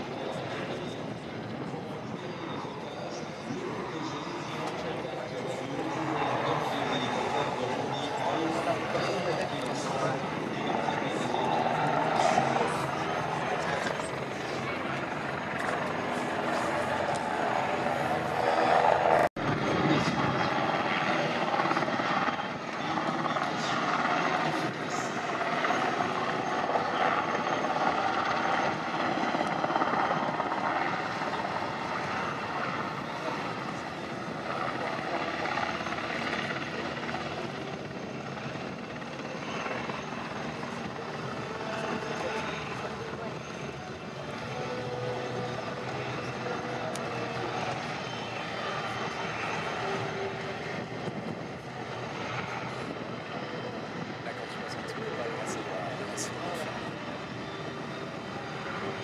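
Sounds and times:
helicopter rotor and turbine: 0.0 - 59.0.

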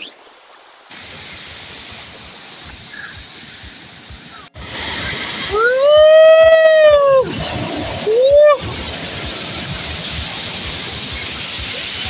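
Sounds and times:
flowing water rushing: 0.0 - 12.0
waterfall splashing: 0.8 - 12.0
woman shrieking: 5.5 - 7.3, 8.0 - 8.6.

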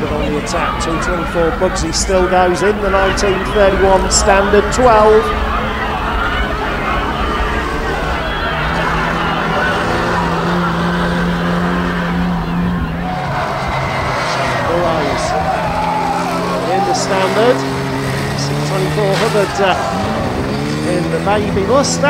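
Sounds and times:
car engines droning and revving: 0.0 - 22.0.

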